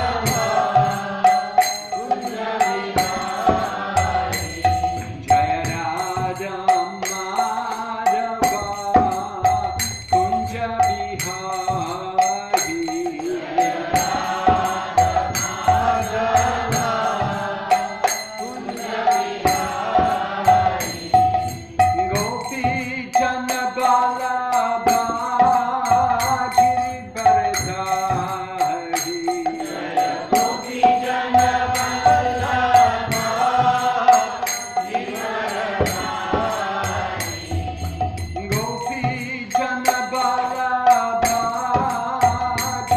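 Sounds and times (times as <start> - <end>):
mantra chanting: 0.0 - 9.6
hand cymbals struck: 0.0 - 42.9.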